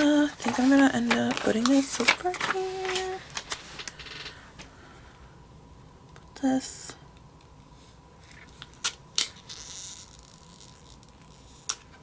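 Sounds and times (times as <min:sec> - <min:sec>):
paper rustling: 0:00.0 - 0:03.9.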